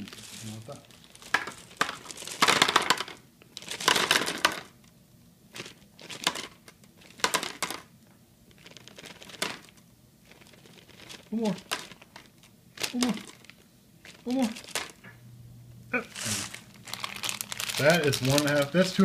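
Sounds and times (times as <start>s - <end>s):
plastic candy bag crinkling: 0.0s - 15.1s, 16.0s - 19.0s
candies clicking into bowl: 1.2s - 4.8s, 5.6s - 7.9s, 10.4s - 15.1s, 16.8s - 19.0s.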